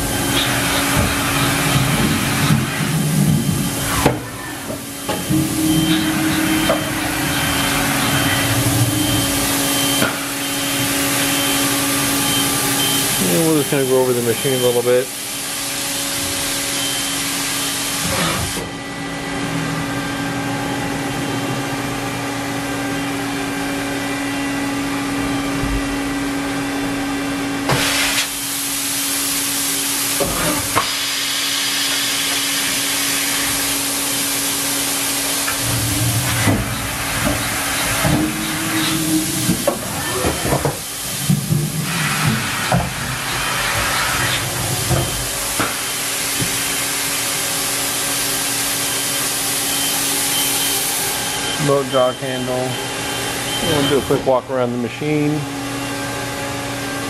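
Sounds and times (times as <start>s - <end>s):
machining centre hissing: 0.0s - 18.6s, 27.7s - 55.5s
machine hum: 0.0s - 27.7s, 28.3s - 57.0s.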